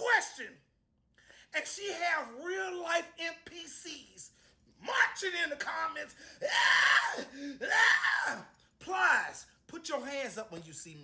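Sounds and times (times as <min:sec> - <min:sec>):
man crying out: 0:04.8 - 0:09.3.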